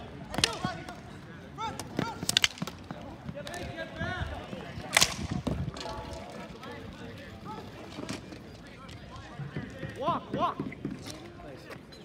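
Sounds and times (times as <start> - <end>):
hockey sticks smacking ball: 0.3 - 1.0, 1.7 - 3.7.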